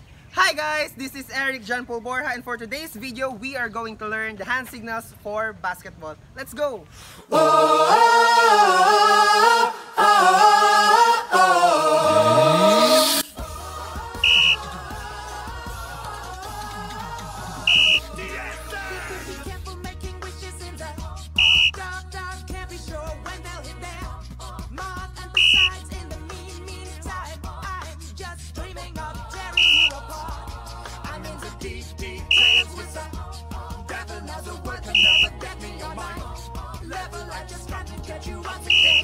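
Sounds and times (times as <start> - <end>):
background music: 7.2 - 39.0
referee's whistle blast: 14.2 - 14.6, 17.7 - 18.1, 21.4 - 21.8, 25.4 - 25.8, 29.6 - 30.0, 32.3 - 32.7, 35.0 - 35.3, 38.7 - 39.0.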